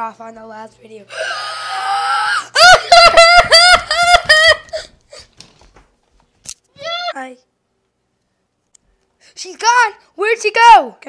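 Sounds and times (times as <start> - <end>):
breathy drawn-out cry: 1.1 - 3.3
girl shrieking laughter: 1.1 - 5.0.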